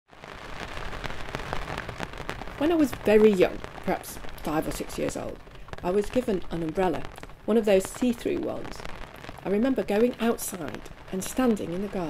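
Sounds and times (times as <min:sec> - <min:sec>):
rain pattering: 0:00.1 - 0:12.0.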